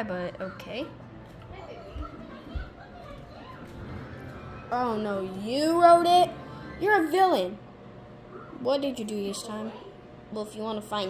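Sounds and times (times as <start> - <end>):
faint voices: 0.3 - 7.4.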